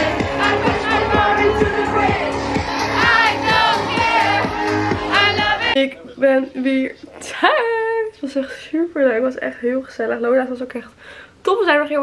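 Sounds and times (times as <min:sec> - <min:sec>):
crowd singing and shouting: 0:00.0 - 0:05.8
loud dance music: 0:00.0 - 0:05.8.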